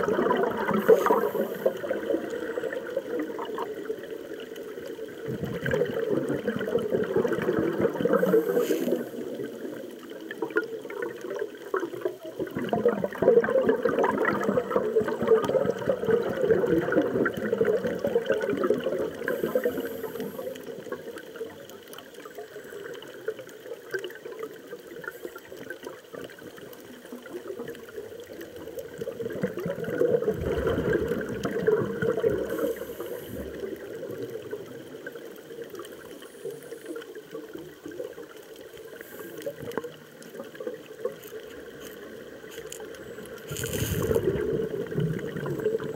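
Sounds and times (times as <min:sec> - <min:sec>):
underwater regulator bubbles: 0:00.0 - 0:45.9.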